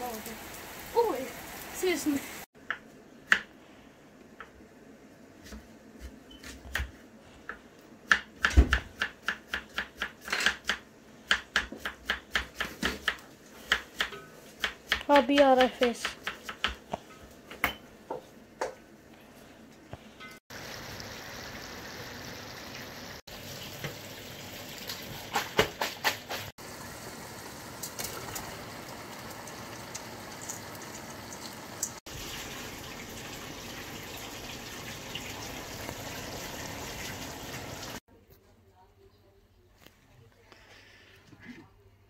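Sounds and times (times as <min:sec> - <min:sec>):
food sizzling in a pot: 0:00.0 - 0:02.5, 0:20.5 - 0:38.0
knife chopping on wooden board: 0:08.1 - 0:16.9.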